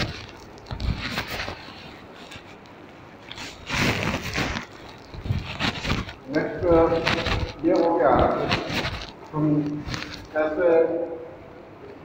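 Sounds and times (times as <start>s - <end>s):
scattered noises: 3.4s - 11.2s.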